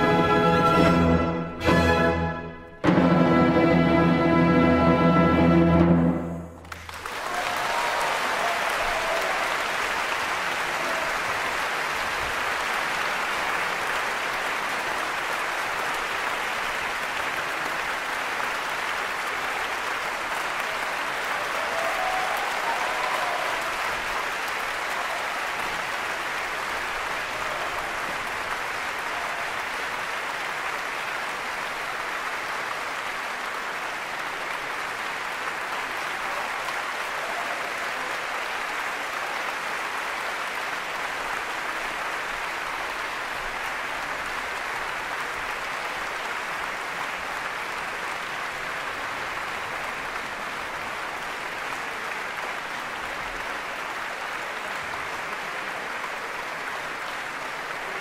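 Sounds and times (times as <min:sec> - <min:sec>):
audience applauding: 0:06.6 - 0:58.0.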